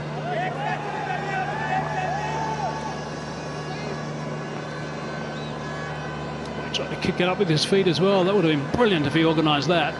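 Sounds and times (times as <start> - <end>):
steady low hum: 0.0 - 9.9.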